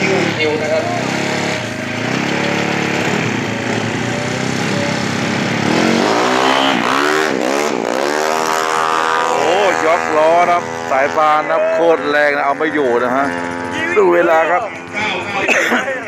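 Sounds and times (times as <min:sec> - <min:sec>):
scooter engine revving and accelerating: 0:00.0 - 0:16.0.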